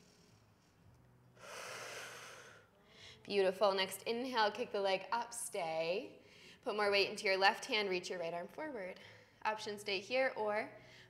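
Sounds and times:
woman breathing out: 1.4 - 3.2.

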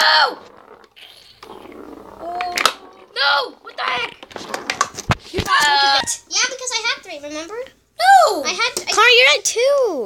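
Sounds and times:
microphone rubbing and handling: 4.0 - 5.6.

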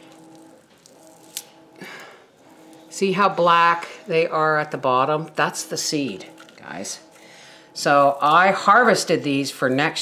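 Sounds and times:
faint steady tones: 0.0 - 10.0
seed heads crackling: 0.0 - 10.0.

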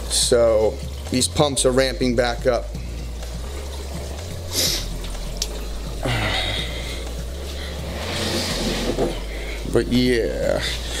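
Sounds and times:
aquarium water sloshing: 0.0 - 11.0
pump low hum: 0.0 - 11.0.

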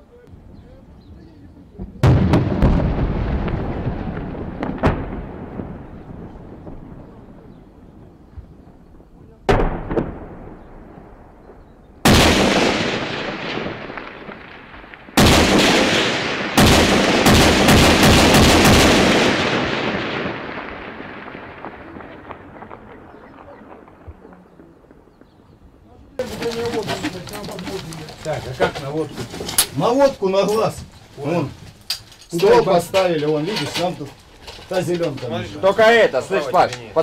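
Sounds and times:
artillery booms with echo: 1.8 - 25.4
rapid cracks and booms: 2.0 - 8.3, 9.0 - 25.2.

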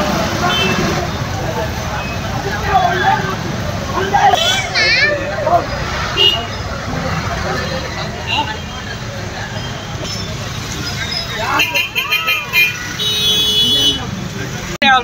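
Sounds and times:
crowd talking and calling out: 0.0 - 15.0
vehicle engines rumbling: 0.0 - 15.0.

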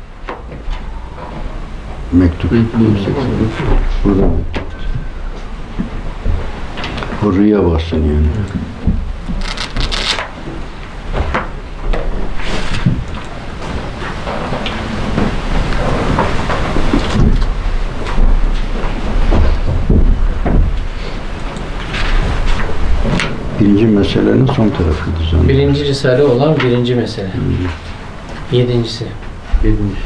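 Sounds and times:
book pages rustling: 9.3 - 10.3.

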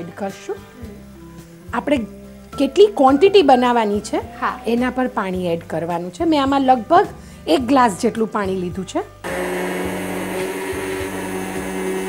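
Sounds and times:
electric hand blender running: 9.2 - 12.0.

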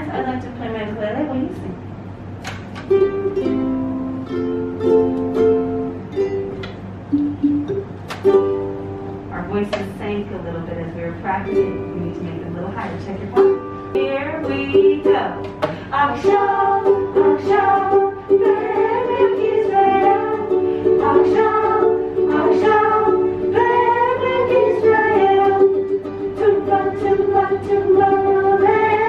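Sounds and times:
ukulele strumming: 2.4 - 9.9, 11.2 - 29.0.

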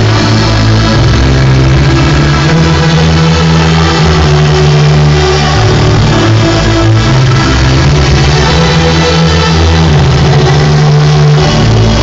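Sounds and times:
electronic dance music on synthesizer: 0.0 - 12.0.

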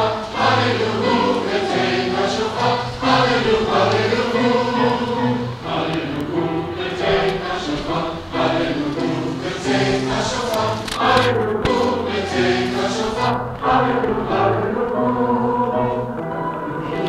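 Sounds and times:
group singing slow song: 0.0 - 17.0.

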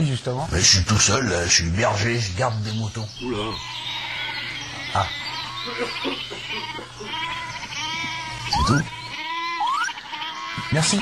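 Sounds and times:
sheep bleating: 3.2 - 11.0.

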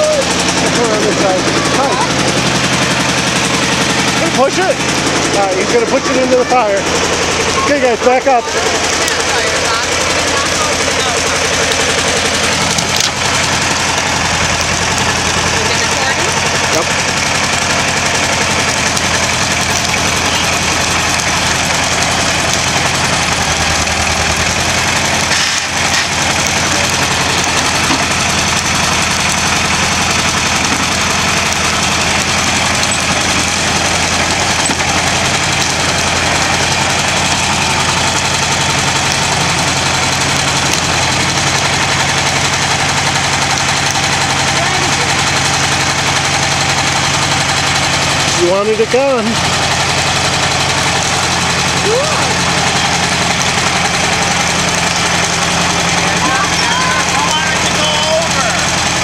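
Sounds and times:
dozer engine running under load: 0.0 - 59.0.

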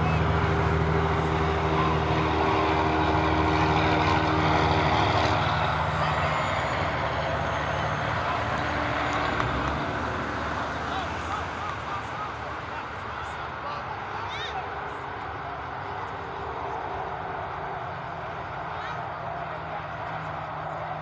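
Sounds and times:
passing engine drone: 0.0 - 21.0.

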